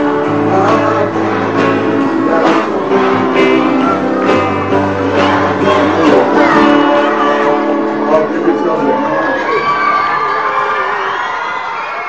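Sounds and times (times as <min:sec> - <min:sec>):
children cheering and shouting: 0:03.6 - 0:04.7, 0:05.4 - 0:12.0.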